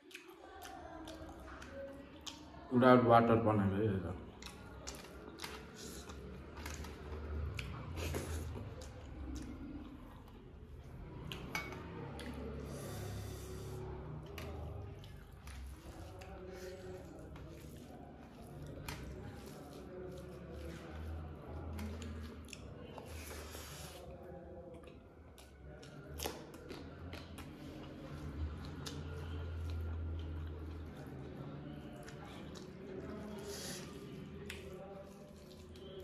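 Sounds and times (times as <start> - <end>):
chewing: 0.0 - 2.7, 4.2 - 36.0
fingers squishing rice and curry: 4.2 - 36.0.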